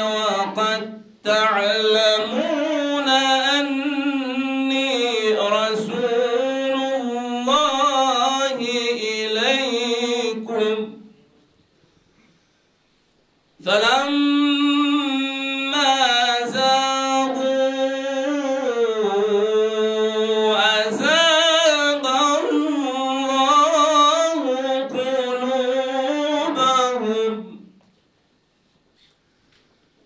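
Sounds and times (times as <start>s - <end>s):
man chanting recitation: 0.0s - 11.2s, 13.6s - 27.8s.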